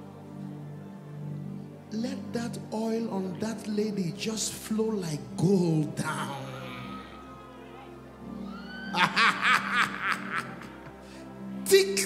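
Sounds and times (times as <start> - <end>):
soft worship music: 0.0 - 12.0
bursts of laughter: 8.9 - 11.0.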